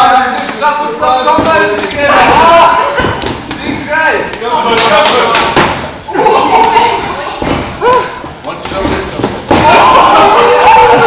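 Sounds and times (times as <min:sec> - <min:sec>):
voices shouting: 0:06.0 - 0:08.3, 0:09.5 - 0:11.0.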